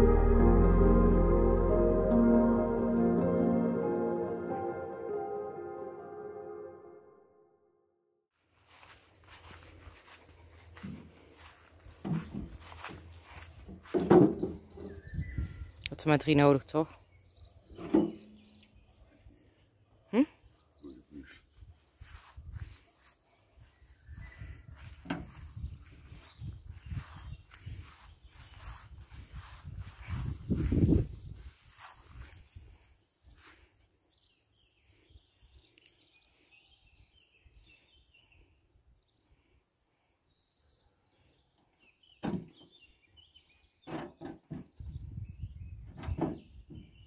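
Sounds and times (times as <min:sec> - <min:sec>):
faint birdsong: 0:08.7 - 0:47.0
wooden planks knocking and clattering: 0:13.8 - 0:14.9.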